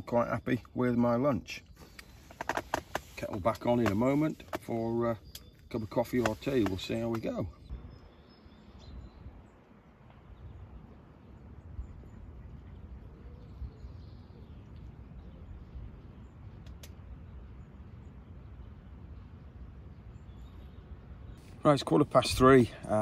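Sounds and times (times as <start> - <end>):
faint bird chirps: 4.0 - 21.6
low steady rumble: 7.6 - 22.8.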